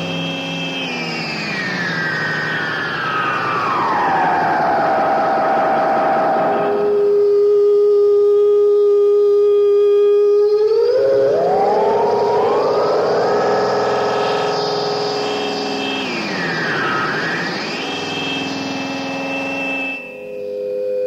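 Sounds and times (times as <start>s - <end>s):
synthesizer drone bending in pitch: 0.0s - 20.4s.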